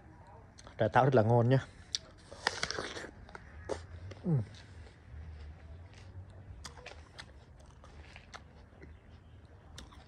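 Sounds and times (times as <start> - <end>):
crunchy chewing: 1.8 - 10.0
biting into crisp apple: 1.9 - 4.7.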